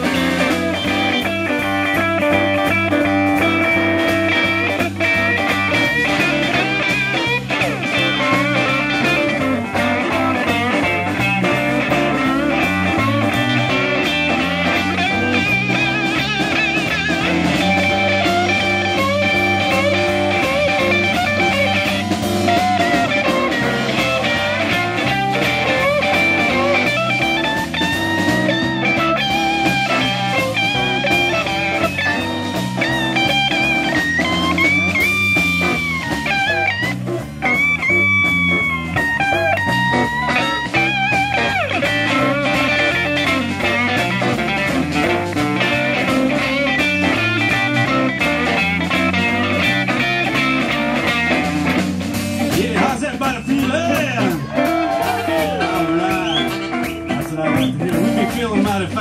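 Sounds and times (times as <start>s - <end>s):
blues band playing: 0.0s - 59.0s
electric guitar lead line: 0.0s - 59.0s.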